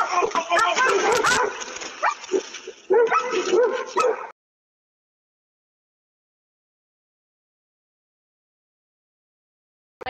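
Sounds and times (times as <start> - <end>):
dog yipping and barking: 0.6 - 4.3.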